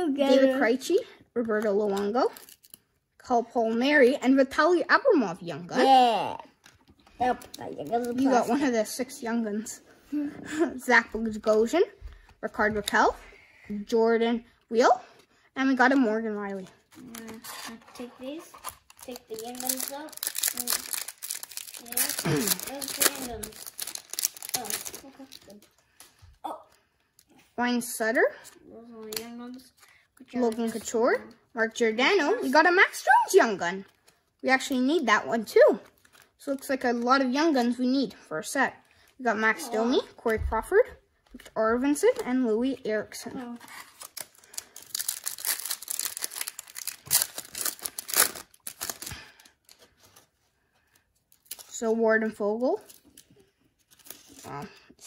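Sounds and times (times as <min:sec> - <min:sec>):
person speaking: 0:05.5 - 0:12.0, 0:16.0 - 0:23.8, 0:39.2 - 0:40.8
foil wrapper tearing and crinkling: 0:18.6 - 0:25.8, 0:43.6 - 0:50.2, 0:51.3 - 0:51.8.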